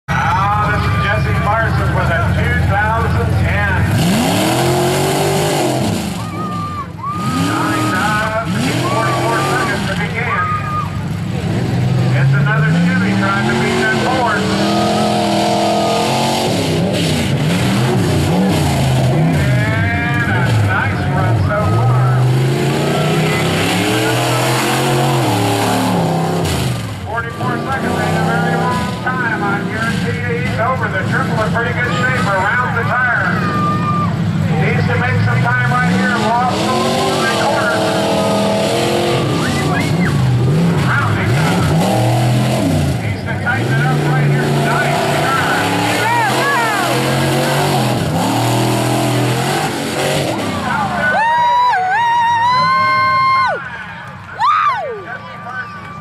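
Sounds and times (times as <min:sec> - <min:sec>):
truck engine revving hard: 0:00.1 - 0:53.6.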